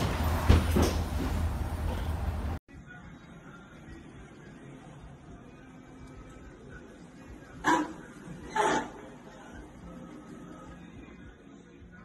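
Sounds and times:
dog barking: 7.6s - 8.0s.

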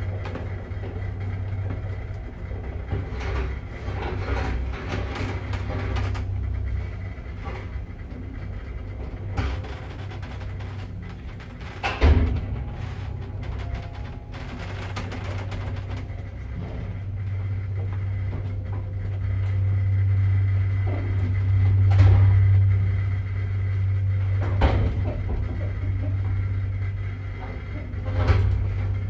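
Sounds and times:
knocks and rattles of lift doors: 0.0s - 29.0s
lift drive humming: 0.0s - 29.0s.

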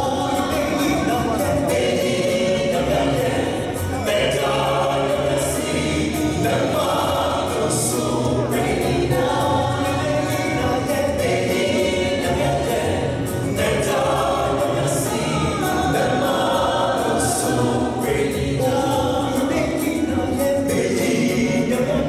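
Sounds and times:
mixed choir singing gospel: 0.0s - 22.0s.

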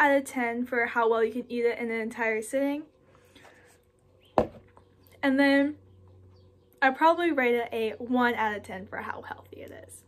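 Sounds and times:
plastic tub knocking on table: 4.4s - 4.7s.

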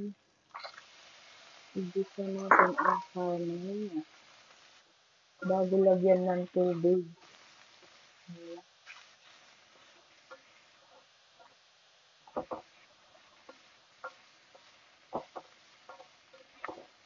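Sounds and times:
faint steady hiss: 0.0s - 17.0s
spatula knocking and scraping pan: 12.3s - 17.0s.

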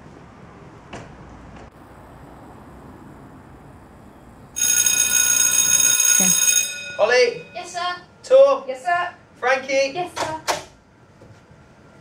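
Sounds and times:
faint outdoor background noise: 0.0s - 12.0s
electric bell ringing: 4.6s - 8.0s.

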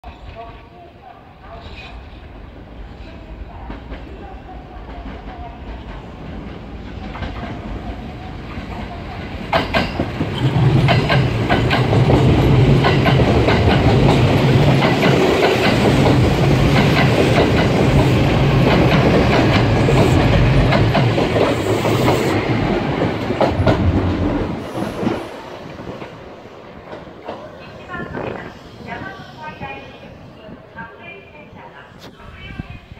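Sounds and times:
electric train passing: 1.7s - 31.9s
train wheels clattering over rail joints: 9.4s - 22.2s.

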